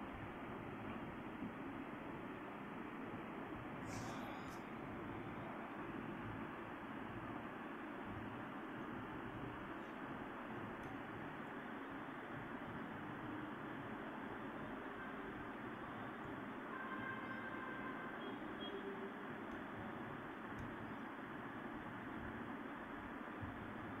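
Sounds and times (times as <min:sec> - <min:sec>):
background hiss: 0:00.0 - 0:23.9.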